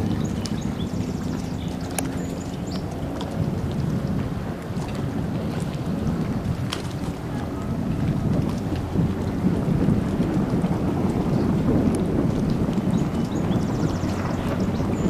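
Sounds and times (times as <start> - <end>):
personal watercraft engine rumble: 0.0 - 15.0
wind on microphone: 0.0 - 15.0.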